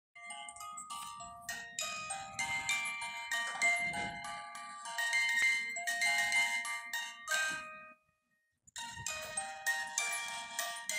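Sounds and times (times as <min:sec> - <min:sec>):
music box playing a tinkling tune: 0:00.2 - 0:08.0, 0:08.8 - 0:10.9.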